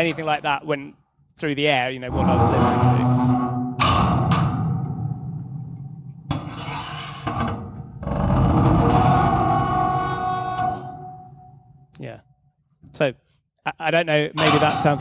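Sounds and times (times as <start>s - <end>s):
bowed metal pipe drone: 2.1s - 6.2s.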